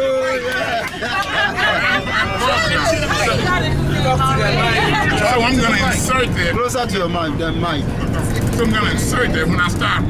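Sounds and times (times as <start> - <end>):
bus engine rumble: 0.0 - 10.0
people chatting and laughing: 0.0 - 10.0.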